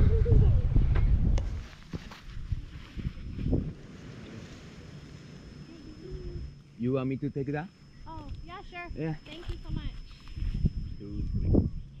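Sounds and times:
wind buffeting microphone: 0:00.0 - 0:05.1, 0:08.0 - 0:12.0
man speaking: 0:06.8 - 0:07.7, 0:08.9 - 0:09.3.

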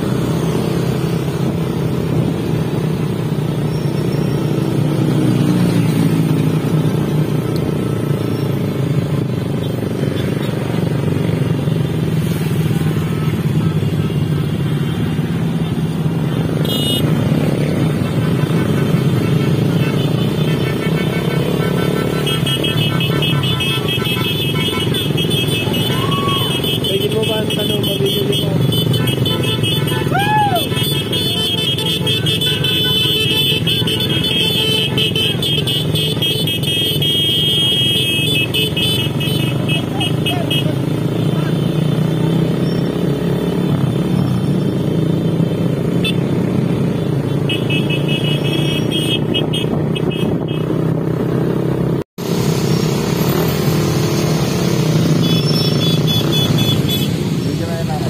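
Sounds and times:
motorcycle engines running: 0:00.0 - 0:58.0
horn toots: 0:16.3 - 0:41.8, 0:47.0 - 0:50.8, 0:54.7 - 0:57.4
voices: 0:24.6 - 0:33.6, 0:39.4 - 0:41.6.

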